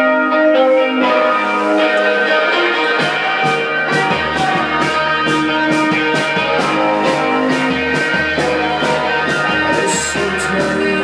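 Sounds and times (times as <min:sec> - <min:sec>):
reverb-drenched electric guitar: 0:00.0 - 0:11.0.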